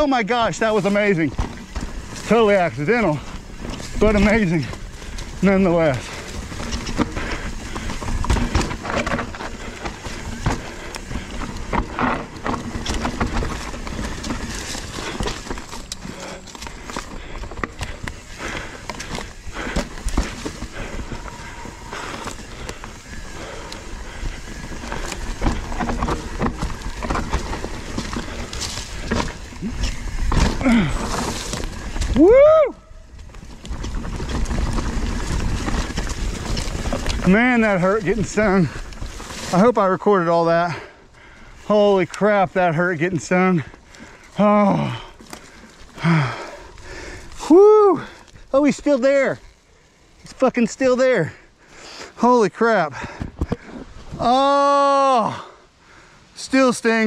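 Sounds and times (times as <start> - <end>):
bike tyres on dirt and leaves: 0.0 - 57.0
bike frame rattling and knocking: 1.1 - 32.6.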